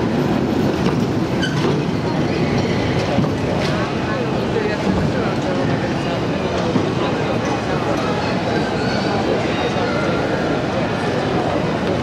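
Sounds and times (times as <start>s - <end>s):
cable car rumbling on rails: 0.0s - 9.4s
crowd voices: 0.0s - 12.0s.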